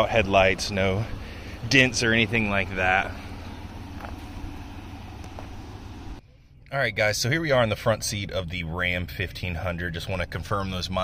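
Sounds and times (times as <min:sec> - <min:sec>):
truck engine idling: 0:00.0 - 0:06.2
faint outdoor background noise: 0:00.0 - 0:11.0.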